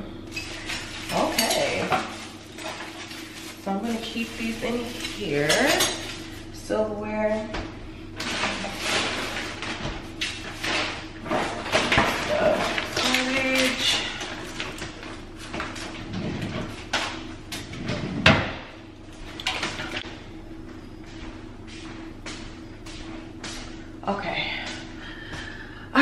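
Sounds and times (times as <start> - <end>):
plastic packaging rustling: 0.3 - 6.5, 8.2 - 16.1.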